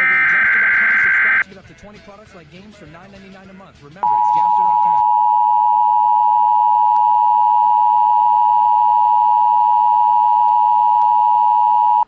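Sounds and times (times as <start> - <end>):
loud steady electronic tone: 0.0 - 1.4.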